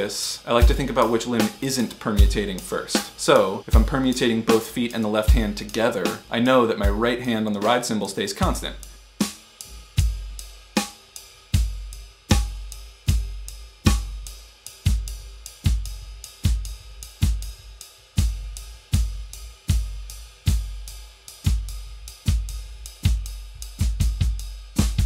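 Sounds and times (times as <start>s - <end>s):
bass drum snare and hi-hat hits: 0.0s - 25.0s
ride cymbal pulse: 0.0s - 25.0s.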